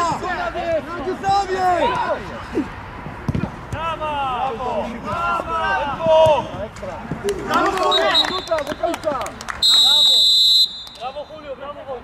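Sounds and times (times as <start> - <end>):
players shouting: 0.0 - 2.7, 7.4 - 8.9
referee's whistle: 7.9 - 8.7, 9.6 - 11.3.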